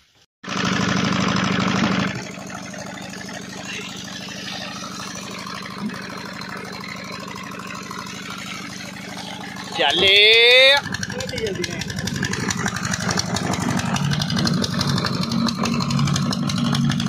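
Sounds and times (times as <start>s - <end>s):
stationary engine running: 0.4s - 17.0s.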